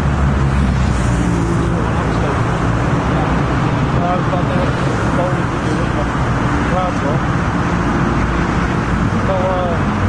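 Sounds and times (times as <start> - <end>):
motorway traffic rumble: 0.0 - 10.0.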